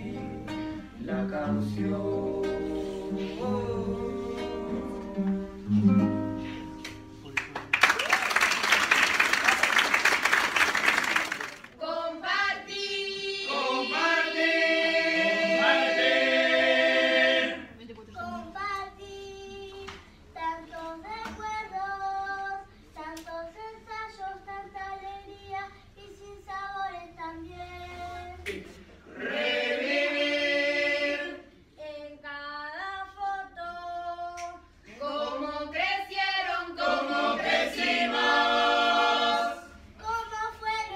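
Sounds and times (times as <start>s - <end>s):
applause: 7.2s - 11.8s
children singing in chorus: 12.0s - 17.6s.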